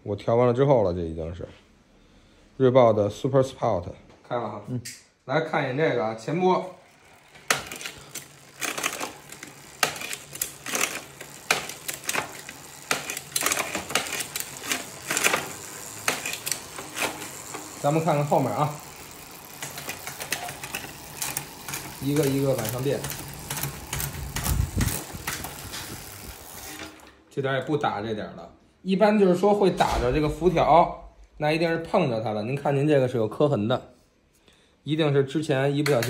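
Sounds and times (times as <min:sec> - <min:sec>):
bicycle chain running over chainrings: 0:06.5 - 0:27.2
metallic clatter of chain shifting: 0:06.9 - 0:27.1.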